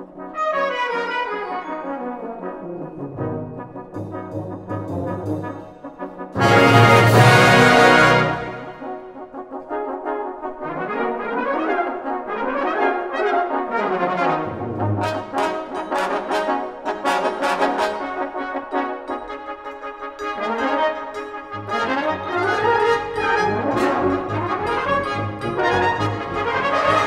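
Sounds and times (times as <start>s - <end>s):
brass band playing: 0.1s - 27.0s.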